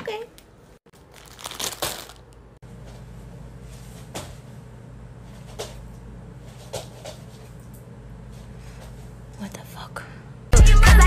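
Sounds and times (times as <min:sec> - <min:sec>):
steady low hum: 0:02.3 - 0:10.6.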